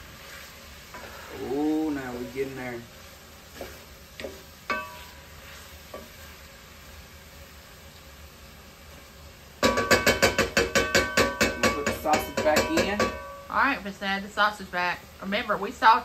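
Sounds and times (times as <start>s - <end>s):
wooden spoon stirring and scraping: 0.0s - 6.7s
vegetables sizzling in a pot: 0.0s - 16.0s.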